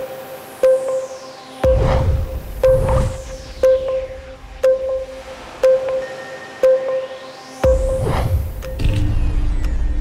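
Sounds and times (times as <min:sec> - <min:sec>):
electronic news theme music: 0:00.0 - 0:09.5.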